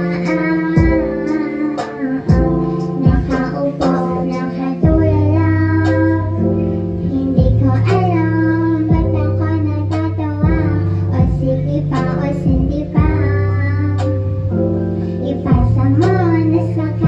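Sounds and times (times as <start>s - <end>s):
instrumental accompaniment: 0.0s - 17.0s
woman singing pop song: 0.0s - 17.0s.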